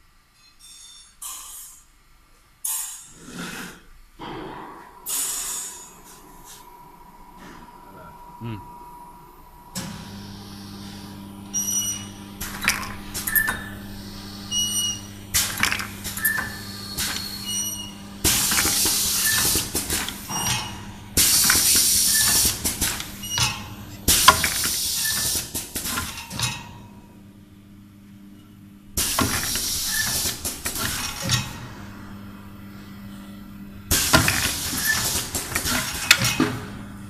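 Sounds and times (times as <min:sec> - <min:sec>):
steady high whine: 0:04.2 - 0:15.4
machine humming: 0:04.2 - 0:24.4
pneumatic air hisses: 0:05.1 - 0:06.0.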